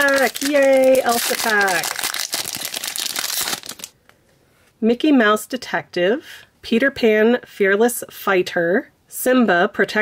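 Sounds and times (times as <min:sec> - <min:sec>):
foil wrapper crinkling: 0:00.0 - 0:03.9.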